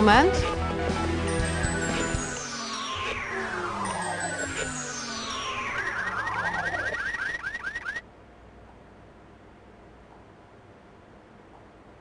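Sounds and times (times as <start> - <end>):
electronic quiz-show jingle: 0.0 - 8.0.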